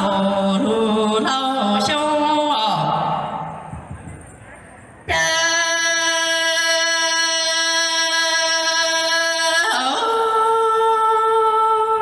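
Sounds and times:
woman singing into a microphone: 5.1s - 12.0s.

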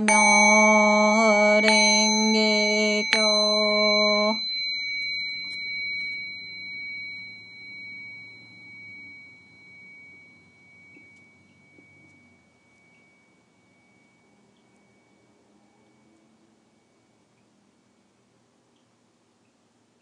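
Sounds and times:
metal prayer bell ringing: 0.0s - 17.4s.

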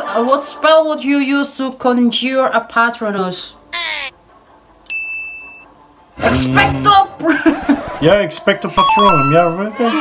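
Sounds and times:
high electronic ding: 8.8s - 9.6s.

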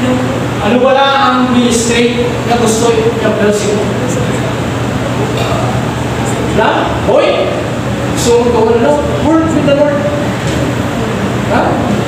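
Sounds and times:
man preaching: 0.0s - 4.2s, 6.4s - 10.3s.

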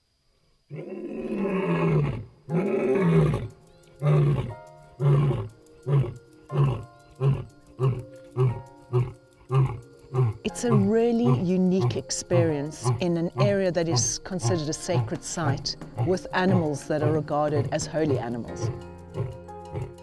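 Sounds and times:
lion moaning roar: 0.7s - 18.2s, 19.1s - 20.0s.

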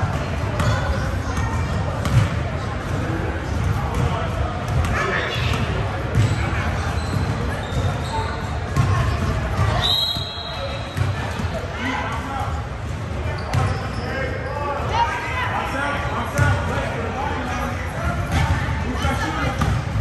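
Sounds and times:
voices in background: 0.0s - 20.0s
basketball bouncing on gym floor: 1.4s - 2.4s, 3.6s - 6.4s, 8.7s - 9.8s.

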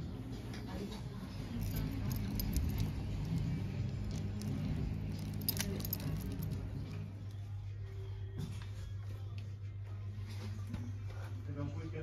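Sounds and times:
steady low hum: 0.0s - 12.0s
necklaces jangling and clinking: 1.4s - 7.4s.

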